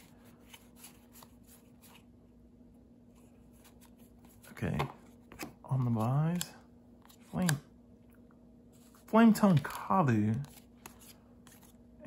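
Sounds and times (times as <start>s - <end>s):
faint steady hum: 0.0s - 12.0s
cards clicking and rustling: 9.0s - 11.8s.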